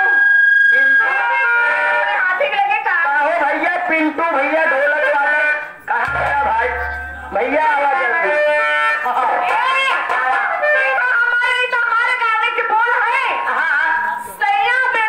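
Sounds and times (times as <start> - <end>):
held reedy instrumental notes: 5.9 - 9.2.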